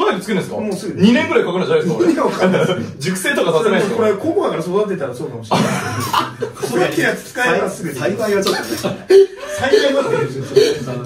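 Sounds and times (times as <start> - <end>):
men laughing together: 5.5 - 7.2, 8.4 - 11.0.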